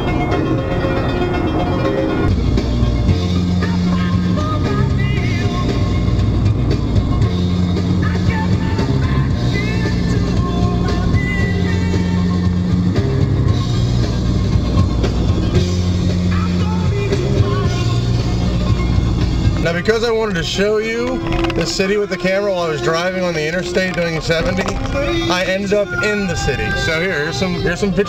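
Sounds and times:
loud rock music: 0.0s - 28.0s.

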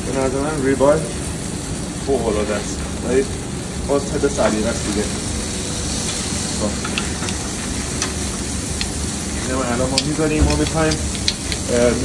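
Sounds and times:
sharp pops and clicks: 0.0s - 11.8s
steaks sizzling on a grill: 0.0s - 12.0s.

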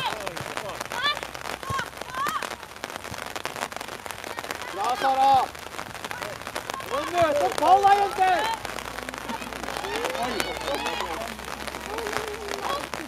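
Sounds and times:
steady outdoor noise: 0.0s - 13.0s
girls shouting: 0.9s - 2.6s, 6.0s - 13.0s.

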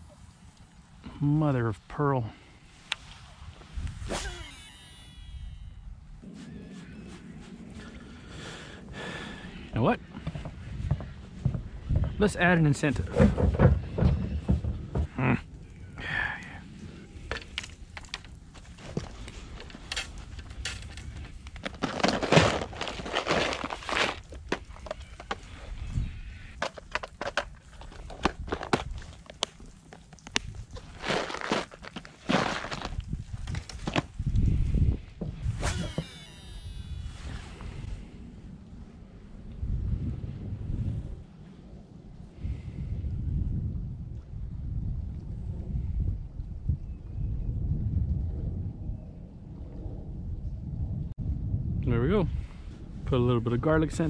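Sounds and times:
wind rumble on microphone: 2.2s - 31.6s, 32.2s - 54.0s
sweeping whir: 4.1s - 5.8s, 35.6s - 37.5s.

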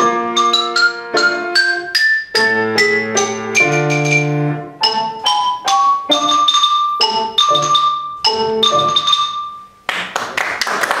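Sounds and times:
xylophone notes ringing: 0.0s - 9.9s
audience applause: 9.9s - 11.0s.

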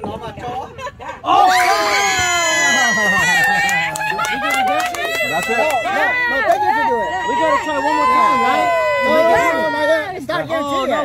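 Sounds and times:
adults cheering and laughing: 0.4s - 11.0s.

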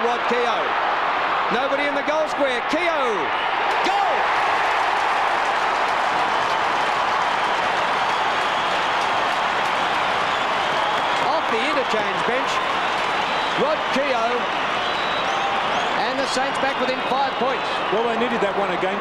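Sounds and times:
stadium crowd cheering and clapping: 0.0s - 19.0s.

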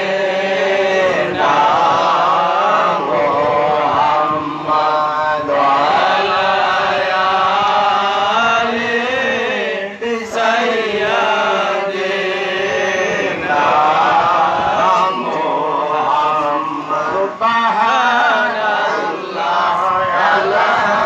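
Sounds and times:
men chanting over a microphone: 0.0s - 21.0s.

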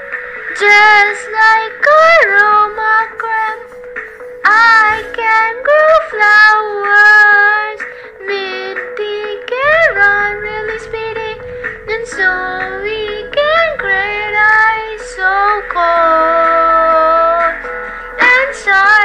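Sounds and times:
backing music: 0.0s - 19.0s
child singing: 0.6s - 3.6s, 4.5s - 17.6s, 18.2s - 19.0s.

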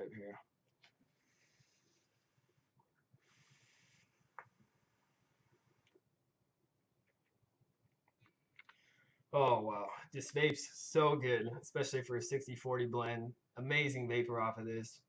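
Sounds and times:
faint airy vape hiss: 1.2s - 2.2s, 3.2s - 4.4s.

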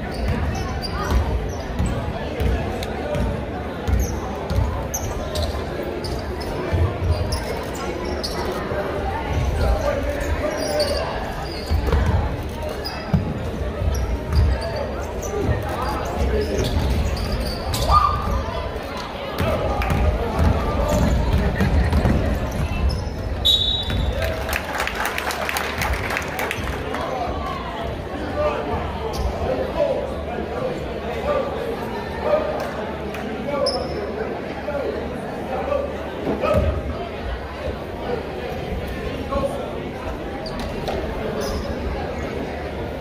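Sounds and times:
sneakers squeaking: 0.0s - 24.3s, 28.6s - 29.8s, 33.5s - 34.2s, 36.4s - 36.9s, 40.3s - 42.7s
spectators chattering: 0.0s - 43.0s
referee's whistle: 23.4s - 24.1s.

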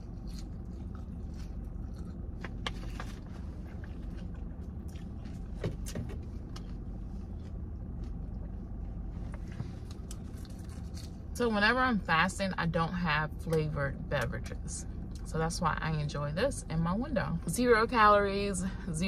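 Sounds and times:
fork crunching salad greens: 0.0s - 5.5s, 9.9s - 11.3s
car engine idling: 0.0s - 19.0s.

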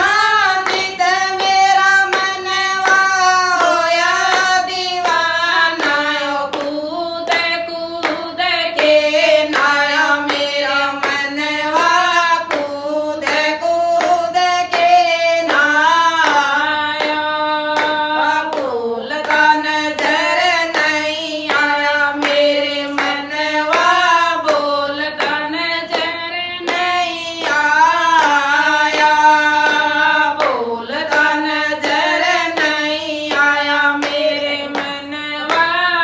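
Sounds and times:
hand-clapping: 0.0s - 36.0s
women singing in unison: 0.0s - 36.0s.

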